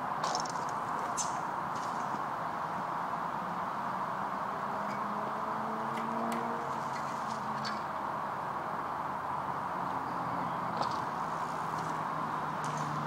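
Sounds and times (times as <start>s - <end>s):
steady rushing background noise: 0.0s - 13.0s.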